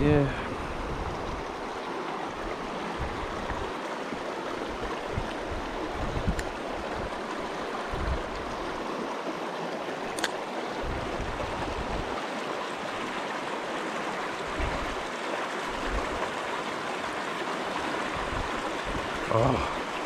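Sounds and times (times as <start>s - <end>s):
stream rushing over rocks: 0.0s - 20.0s.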